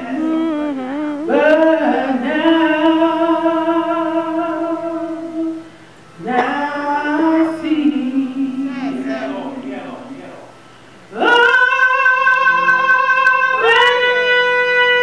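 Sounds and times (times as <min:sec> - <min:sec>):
man singing into a microphone: 0:00.0 - 0:05.6, 0:06.2 - 0:09.4, 0:11.1 - 0:15.0.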